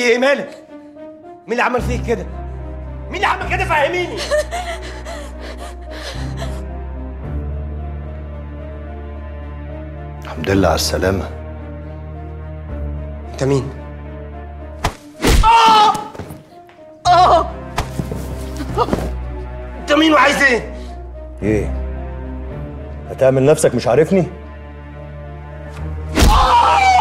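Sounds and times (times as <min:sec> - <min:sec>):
dramatic background music: 0:00.0 - 0:27.0
woman crying and sobbing: 0:04.0 - 0:07.0, 0:17.0 - 0:17.7
pained cry: 0:26.2 - 0:27.0.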